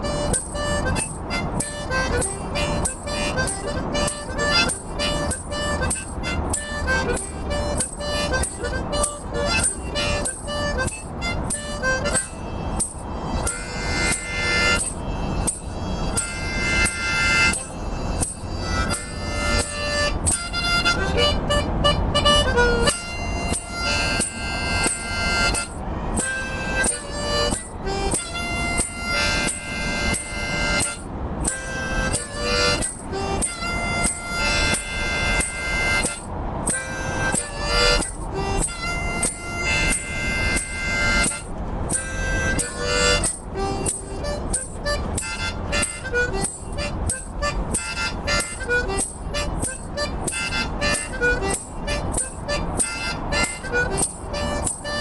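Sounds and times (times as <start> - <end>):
harmonica playing: 0.0 - 55.0
low background rumble: 0.0 - 55.0.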